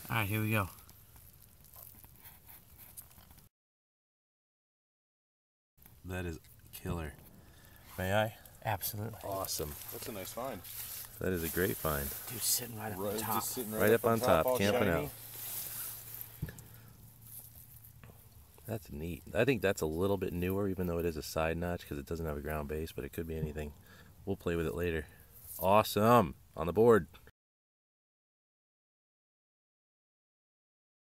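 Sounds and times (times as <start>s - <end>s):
fingers rustling in wet soil: 0.0s - 3.5s, 5.8s - 25.9s.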